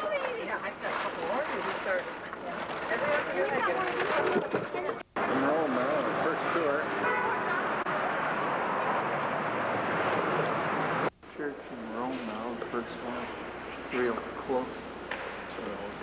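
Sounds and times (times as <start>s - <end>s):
people's voices: 0.0s - 7.9s
traffic noise: 0.0s - 16.0s.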